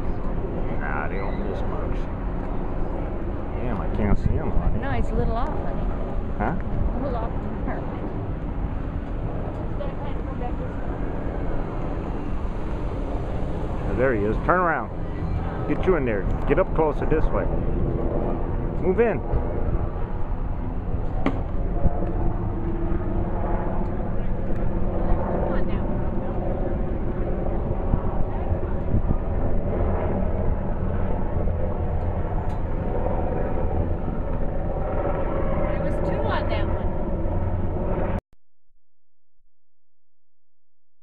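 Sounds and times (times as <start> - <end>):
steady low rumble: 0.0 - 38.2.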